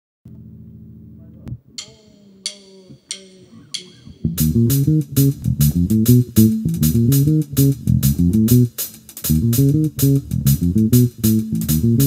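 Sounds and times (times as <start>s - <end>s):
ringing percussive count-in strokes: 1.8s - 5.4s.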